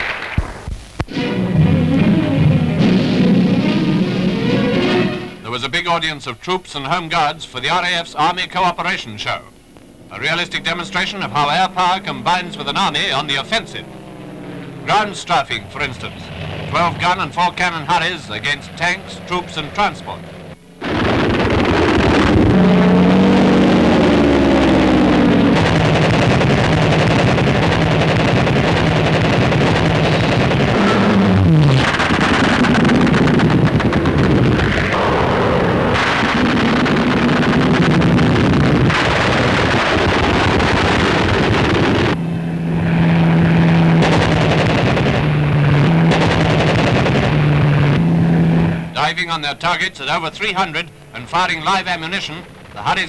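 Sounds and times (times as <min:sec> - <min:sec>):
machine-gun and cannon fire: 0:00.0 - 0:00.8, 0:20.8 - 0:42.2, 0:43.0 - 0:48.1
fighter plane engines running hard: 0:01.1 - 0:05.4, 0:09.6 - 0:53.0.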